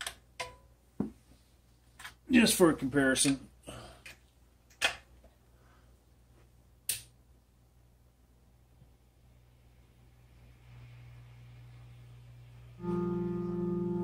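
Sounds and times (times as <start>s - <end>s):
faint low hum: 5.2s - 14.0s
loud amplifier buzzing hum: 11.0s - 14.0s.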